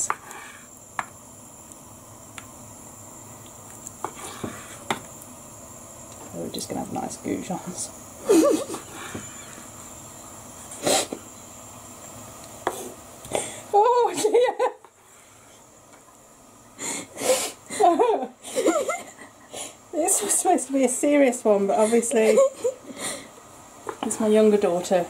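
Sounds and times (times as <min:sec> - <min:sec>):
person laughing: 0:08.2 - 0:08.9, 0:13.8 - 0:14.9, 0:17.7 - 0:19.7, 0:21.7 - 0:23.1.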